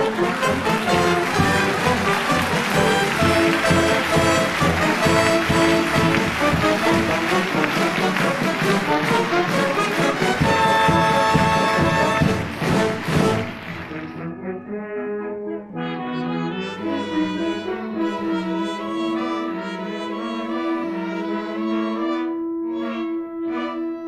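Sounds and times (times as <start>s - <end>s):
orchestral music led by brass: 0.0s - 24.0s.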